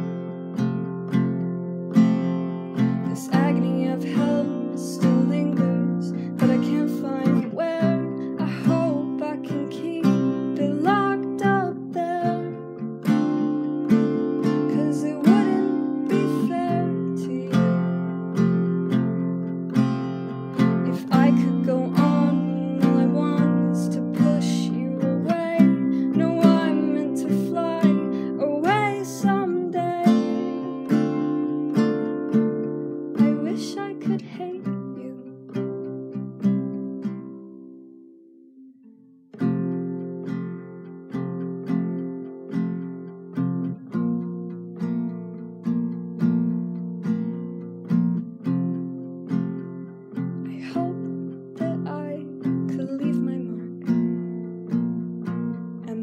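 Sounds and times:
acoustic guitar strummed and plucked: 0.0 - 56.0.

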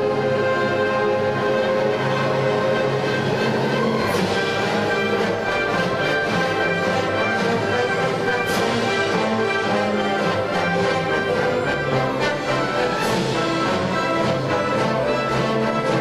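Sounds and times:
orchestra playing classical music: 0.0 - 16.0.

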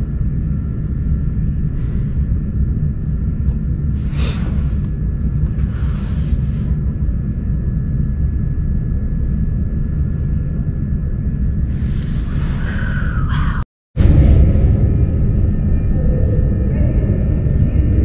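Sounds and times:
faint whine tones: 0.0 - 18.0
train carriage rumble and hum: 0.0 - 18.0.

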